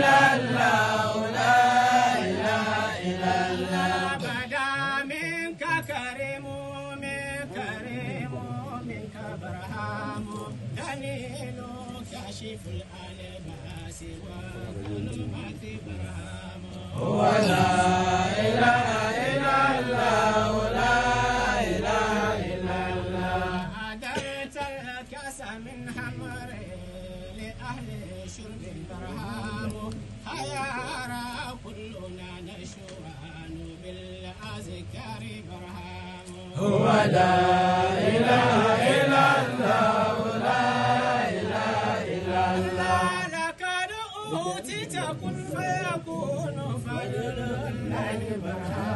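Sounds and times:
man chanting: 0.0 - 48.9.

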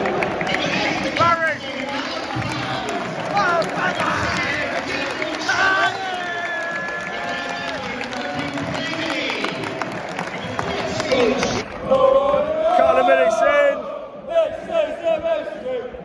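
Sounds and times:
crowd chanting: 0.0 - 9.4, 10.3 - 15.9
handclaps: 0.0 - 11.6.

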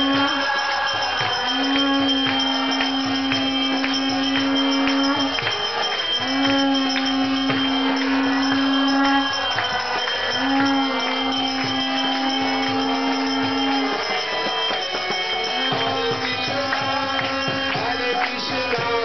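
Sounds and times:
conch shell blasts: 0.0 - 18.2.

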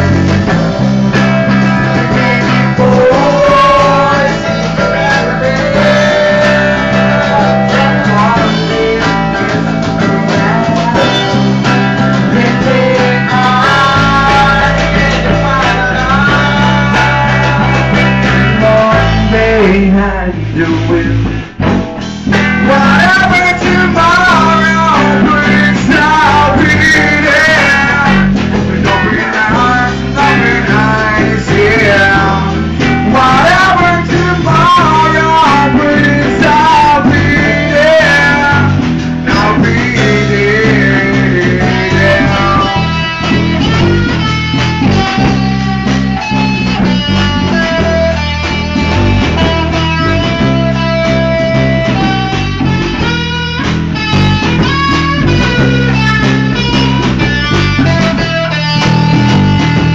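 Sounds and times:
drums: 0.0 - 59.9
electric guitar lead: 0.0 - 59.9.

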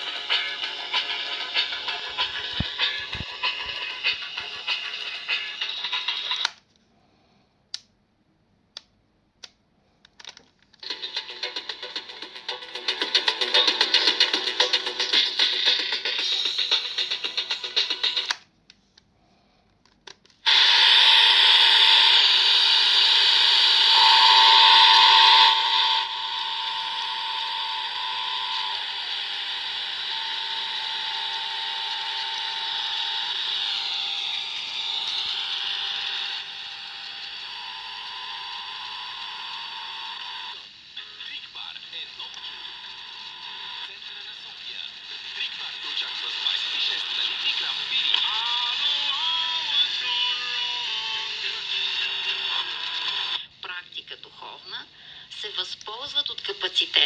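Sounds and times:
steady whistle: 20.5 - 32.9
sweeping tone: 21.2 - 36.6
radio static hiss: 40.9 - 42.8, 43.5 - 48.8
voice on radio station: 41.0 - 42.8, 43.7 - 57.0.

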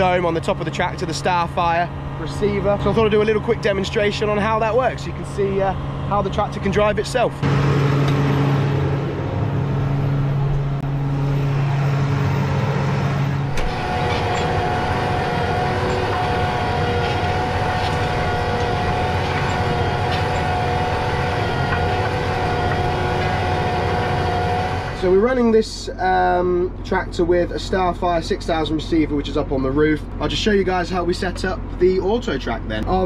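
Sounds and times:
machinery whine: 0.0 - 32.2
tractor diesel engine running: 0.0 - 33.0.

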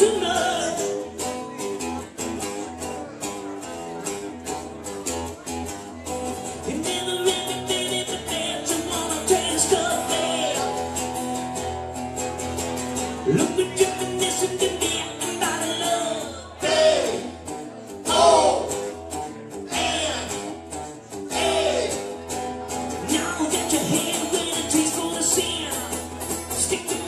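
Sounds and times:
lead singer singing: 0.0 - 1.0, 6.6 - 10.8, 13.2 - 17.3, 21.3 - 22.0, 23.0 - 27.0
live band playing: 0.0 - 27.0.

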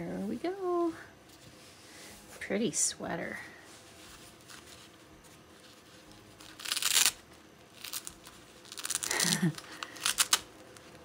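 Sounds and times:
diaper tab tearing open: 6.4 - 10.8.

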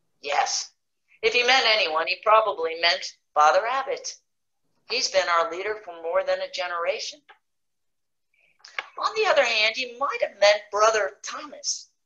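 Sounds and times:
woman reading aloud: 0.2 - 4.2, 4.9 - 7.2, 8.8 - 11.9.

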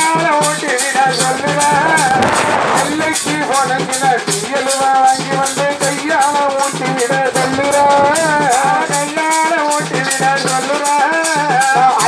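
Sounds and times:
drum beats: 0.0 - 12.0
steady high rattle: 1.0 - 4.6.

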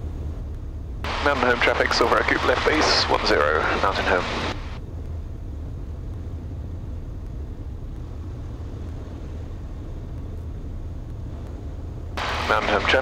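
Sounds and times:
aircraft engine drone: 0.0 - 13.0
airflow in flight: 0.0 - 13.0.

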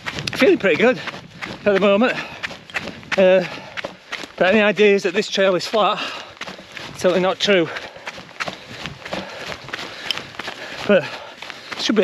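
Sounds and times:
running footsteps on trail: 0.0 - 12.0.

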